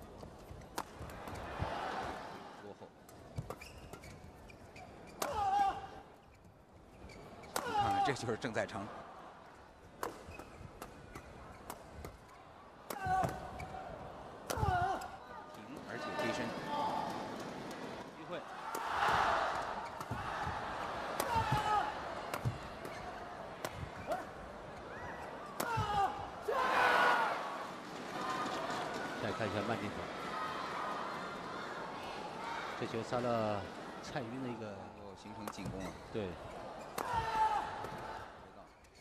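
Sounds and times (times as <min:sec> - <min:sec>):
shoes squeaking on court: 0:03.3 - 0:05.2, 0:06.2 - 0:07.6, 0:10.0 - 0:12.3, 0:22.4 - 0:25.5, 0:35.5 - 0:37.0
crowd cheering and shouting: 0:18.5 - 0:22.6, 0:24.9 - 0:33.4
rackets striking shuttlecock: 0:19.5 - 0:20.3, 0:22.3 - 0:23.0, 0:23.6 - 0:24.3.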